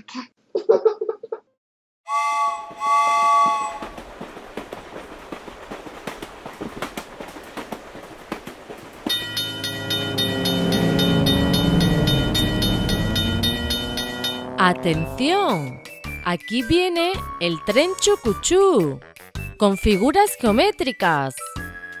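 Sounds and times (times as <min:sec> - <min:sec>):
steam train whistle: 0:02.1 - 0:03.9
train wheels clattering on rails: 0:03.4 - 0:14.4
level crossing bell ringing: 0:09.1 - 0:15.2
low falling pitch tone: 0:09.1 - 0:15.8.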